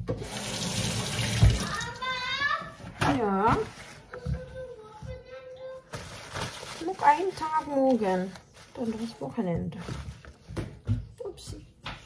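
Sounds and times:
tap water running into sink: 0.0 - 2.2.

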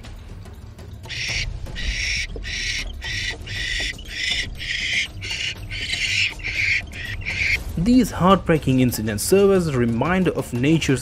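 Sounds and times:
owls hissing raspily: 1.1 - 7.6.

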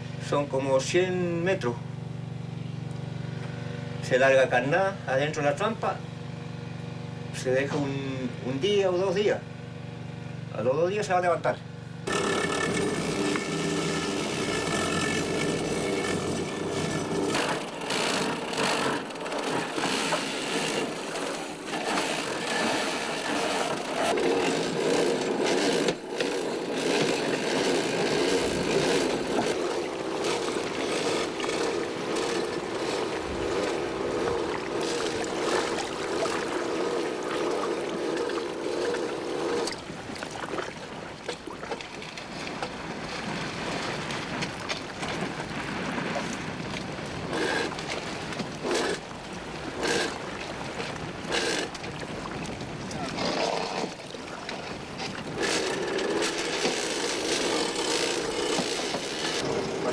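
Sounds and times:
winch running: 12.0 - 40.7, 47.3 - 52.0, 52.6 - 59.9
rope and gear knocking on hull: 49.8 - 59.9.

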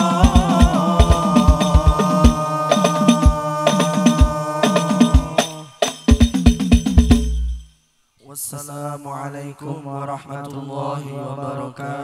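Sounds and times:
man chanting: 0.0 - 5.9.

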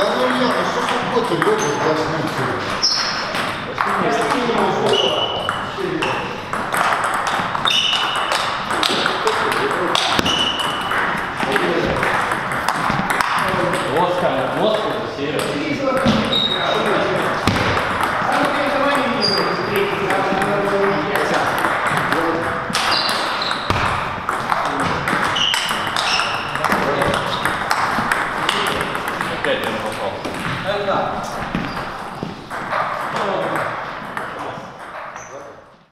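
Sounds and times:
men's voices in a hall: 0.0 - 3.0, 3.6 - 6.5, 8.7 - 10.6, 11.2 - 22.8, 24.2 - 35.9
table tennis ball clicking: 3.0 - 13.9.

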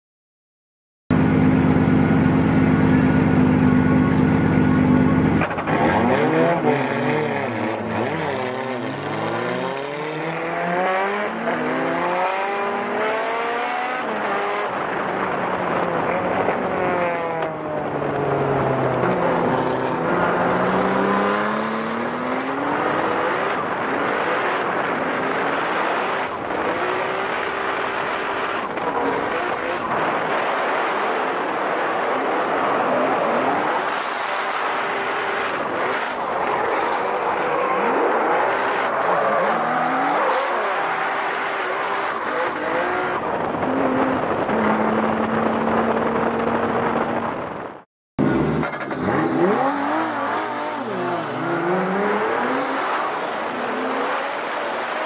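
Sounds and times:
tire noise: 1.1 - 55.0
car engine revving: 1.2 - 55.0.

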